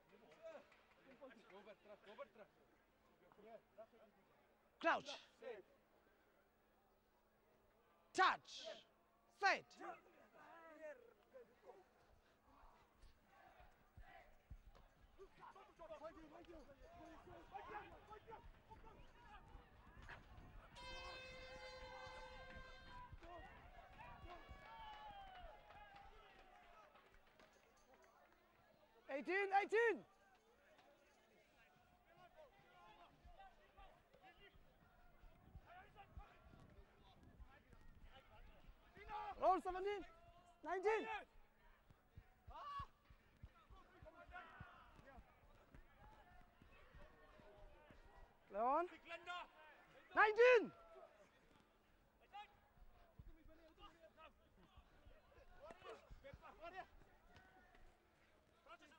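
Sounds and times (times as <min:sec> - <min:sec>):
faint shouts from players: 0:17.0 - 0:26.6, 0:32.2 - 0:58.2.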